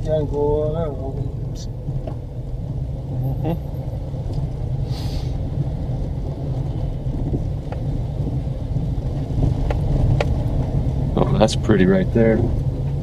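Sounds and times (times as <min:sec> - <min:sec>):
car driving rumble from inside: 0:00.0 - 0:13.0.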